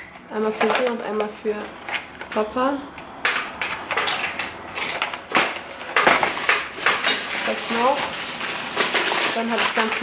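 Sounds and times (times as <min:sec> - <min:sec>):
packaging rustling and clattering: 0:03.2 - 0:10.0
shopping bag rummaged: 0:03.6 - 0:10.0.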